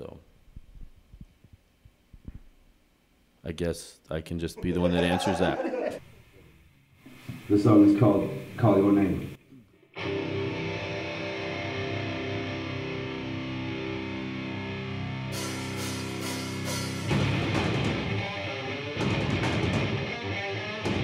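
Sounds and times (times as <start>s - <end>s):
electric guitar chords: 10.0s - 21.0s
heavy metal band playing: 10.0s - 21.0s
cymbal hits: 15.4s - 17.7s.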